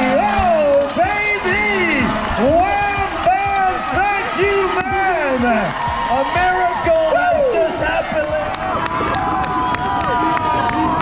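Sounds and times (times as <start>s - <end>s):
announcer over public address: 0.0s - 8.6s
crowd noise: 0.0s - 11.0s.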